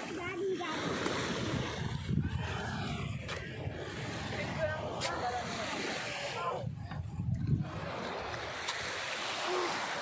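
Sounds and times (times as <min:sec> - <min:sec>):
surf: 0:00.0 - 0:10.0
wind: 0:00.0 - 0:10.0.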